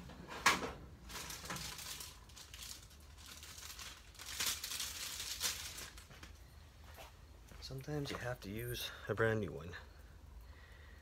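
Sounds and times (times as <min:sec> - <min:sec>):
plastic packaging rustling: 0:00.5 - 0:06.4.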